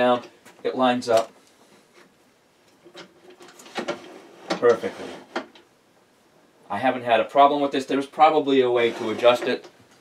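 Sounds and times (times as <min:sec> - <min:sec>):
metal scraping on lathe bed: 0:08.7 - 0:09.6.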